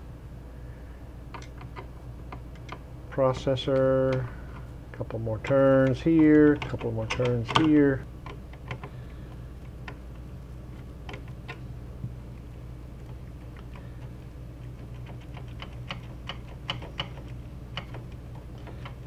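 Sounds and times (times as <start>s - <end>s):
screwdriver clicking on metal: 5.4s - 8.9s, 14.7s - 19.0s.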